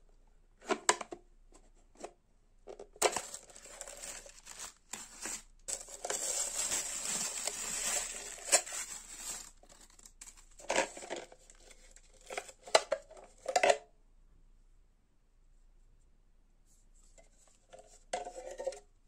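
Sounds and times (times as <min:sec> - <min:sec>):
plastic wrap rustling: 0:03.0 - 0:12.4.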